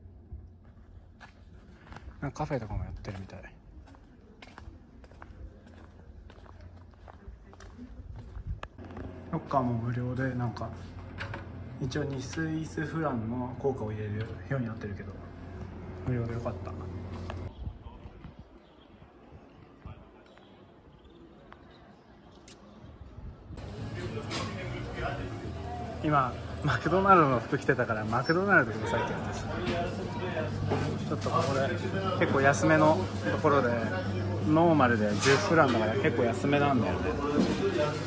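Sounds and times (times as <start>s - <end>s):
town background low rumble: 0.0s - 31.2s
faint footsteps: 2.9s - 11.6s, 16.7s - 17.5s.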